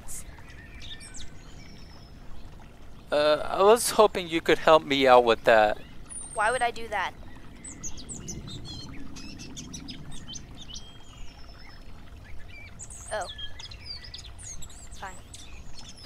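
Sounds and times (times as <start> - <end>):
birds chirping and calling: 0.0 - 16.0
low outdoor rumble: 0.0 - 16.0.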